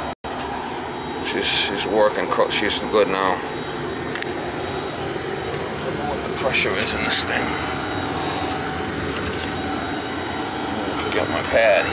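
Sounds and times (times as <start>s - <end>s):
boiler burner rushing: 0.0s - 11.9s.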